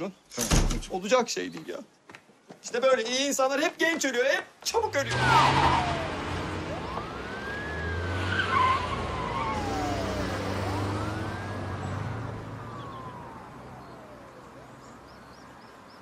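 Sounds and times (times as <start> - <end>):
car driving off: 4.8 - 15.4
police siren wailing: 5.1 - 14.8.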